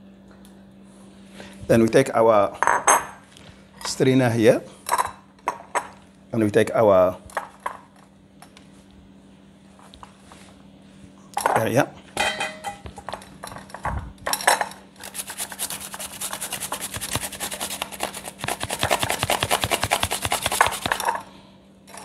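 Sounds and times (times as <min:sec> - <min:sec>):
cucumber grated on metal grater: 0:15.0 - 0:21.1.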